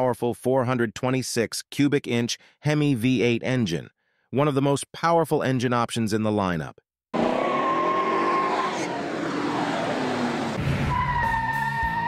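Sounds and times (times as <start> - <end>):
car engine driving off: 7.2 - 10.8.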